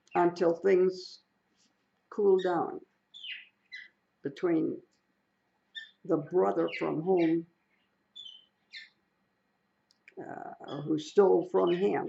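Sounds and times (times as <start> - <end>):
parrot chirping: 2.4 - 4.0, 5.7 - 7.4, 8.1 - 9.0.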